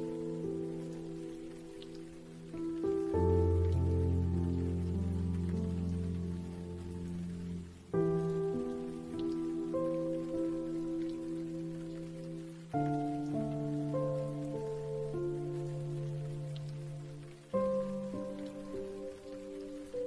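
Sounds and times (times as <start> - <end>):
rain pattering: 0.0 - 20.0
slow soft piano chords: 0.0 - 20.0.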